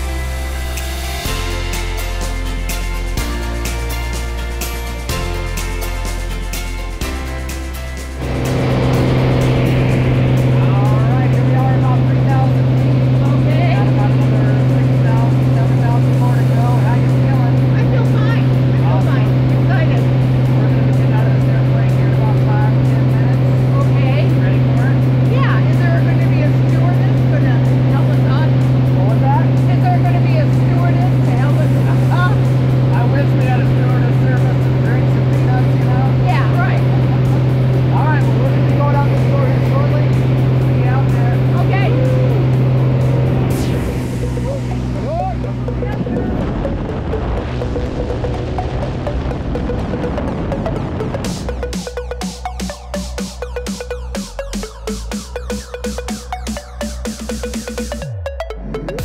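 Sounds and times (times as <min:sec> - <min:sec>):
propeller airplane engine droning: 0:00.0 - 0:59.0.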